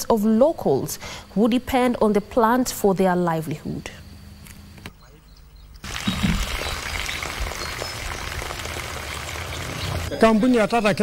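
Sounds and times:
water gushing from pipe: 5.8s - 10.1s.

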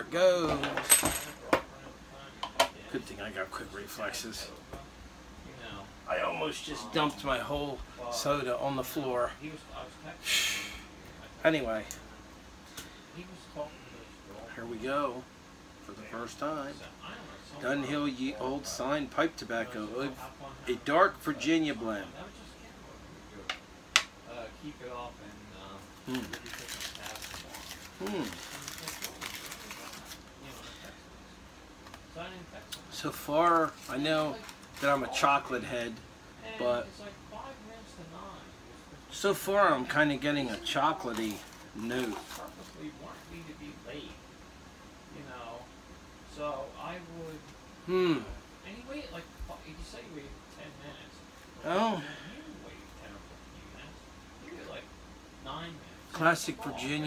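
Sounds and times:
tobacco rustling: 26.0s - 30.9s, 33.2s - 35.6s, 40.4s - 43.3s.

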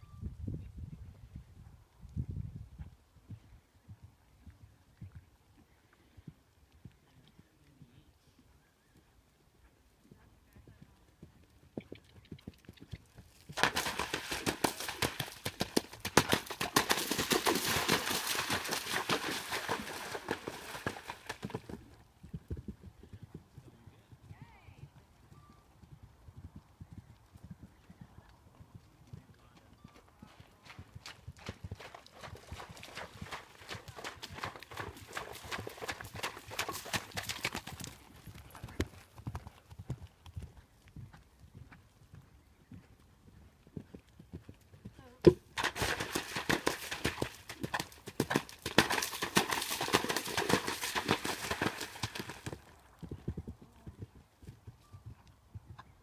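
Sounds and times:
horse hoofbeats on turf: 10.7s - 25.5s, 26.4s - 42.9s, 43.8s - 56.0s.

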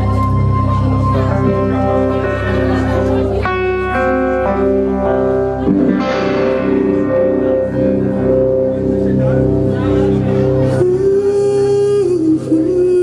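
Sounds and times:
low bass: 0.0s - 13.0s
sustained electric guitar notes: 0.0s - 13.0s.

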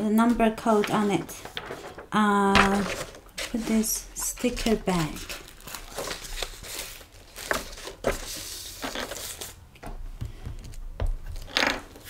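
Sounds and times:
paper rustling and crinkling: 0.0s - 9.6s.

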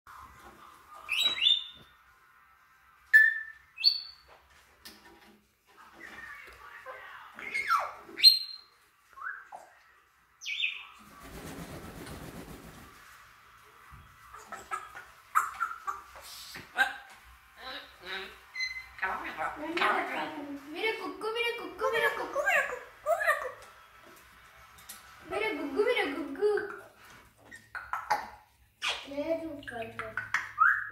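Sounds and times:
parrots whistling and squawking: 1.0s - 1.8s, 3.1s - 4.3s, 7.4s - 9.8s, 14.3s - 19.6s, 30.2s - 30.9s
wings flapping: 11.0s - 13.3s.

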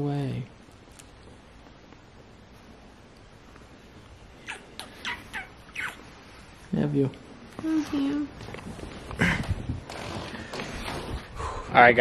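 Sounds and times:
squeaky kisses: 4.4s - 6.0s.

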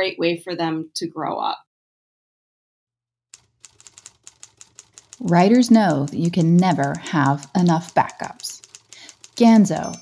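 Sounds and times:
rapid keyboard typing: 3.4s - 10.0s.

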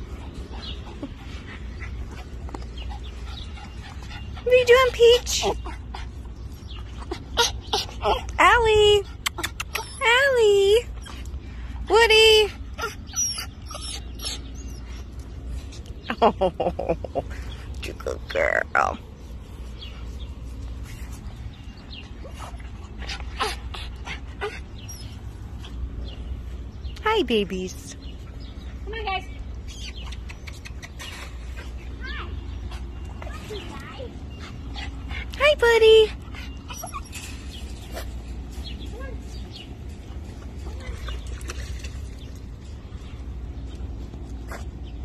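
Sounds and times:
small dog whining and yipping: 9.4s - 10.1s, 12.8s - 14.8s, 36.6s - 38.0s.

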